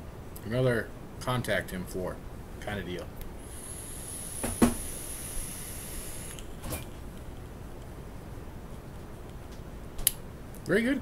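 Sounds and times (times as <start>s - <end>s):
e-cigarette coil sizzling: 3.4s - 7.3s
sharp pop: 4.4s - 4.9s.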